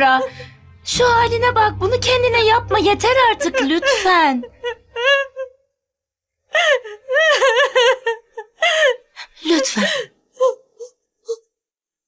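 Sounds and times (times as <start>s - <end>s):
young woman sobbing and wailing: 2.6s - 5.8s, 6.4s - 11.5s.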